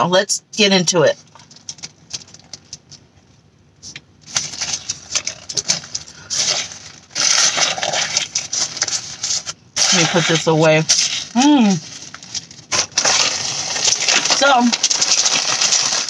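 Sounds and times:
paper bag crinkling: 1.3 - 2.8, 4.2 - 16.0.

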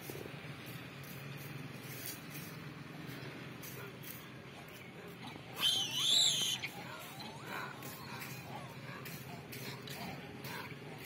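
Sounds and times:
soft wavering monkey calls: 5.1 - 9.8
young monkey squealing: 5.5 - 7.5.

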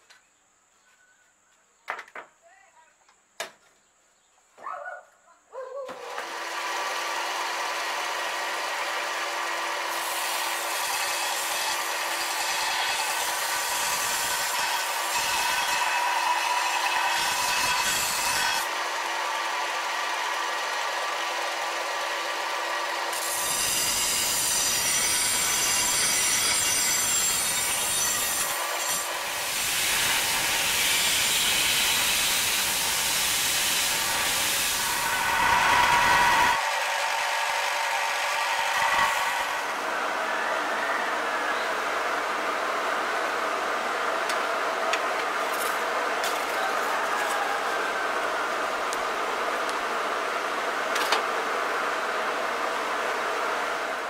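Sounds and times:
belt grinder grinding steel: 6.0 - 39.8.

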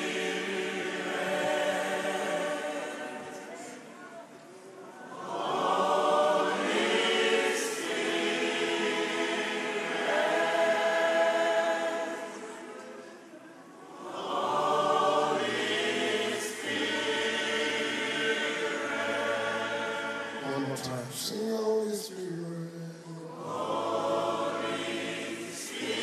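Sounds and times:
choir singing slow worship song: 0.0 - 4.1, 4.8 - 26.0.

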